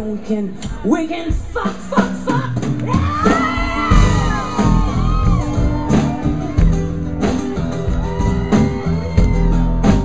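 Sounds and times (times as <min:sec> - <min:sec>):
live rock band playing: 0:00.5 - 0:10.0
acoustic guitar: 0:00.7 - 0:10.0
audience whooping: 0:02.9 - 0:10.0.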